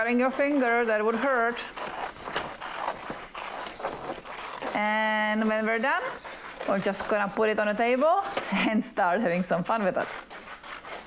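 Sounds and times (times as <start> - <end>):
scissors snipping paper: 0.0 - 8.6, 9.3 - 11.0
paper rustling: 0.0 - 11.0.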